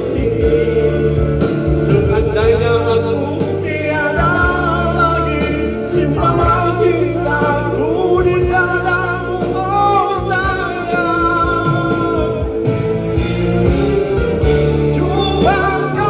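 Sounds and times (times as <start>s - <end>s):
man singing pop ballad: 0.0s - 13.3s, 14.6s - 16.0s
recorded backing track: 0.0s - 16.0s.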